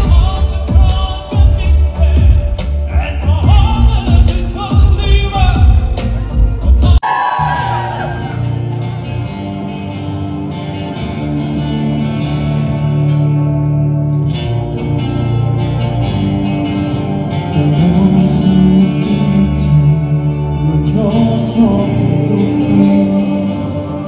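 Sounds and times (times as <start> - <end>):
man singing: 0.0 - 7.0, 17.3 - 24.0.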